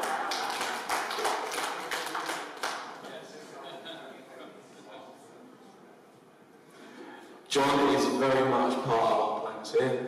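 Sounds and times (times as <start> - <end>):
room of people laughing: 3.4 - 5.2.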